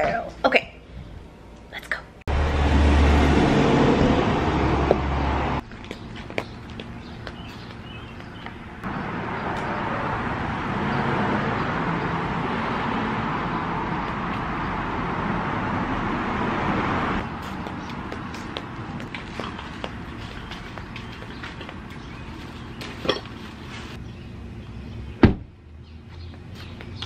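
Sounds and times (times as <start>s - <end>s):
large vehicle driving past: 2.3s - 5.6s.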